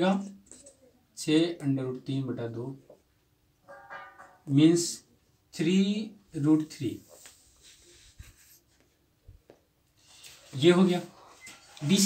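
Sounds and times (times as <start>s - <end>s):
marker scraping on whiteboard: 7.0s - 9.0s.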